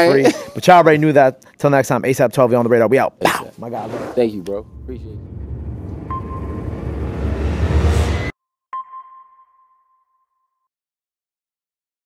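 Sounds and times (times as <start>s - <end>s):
sonar ping ringing tone: 6.0s - 10.7s.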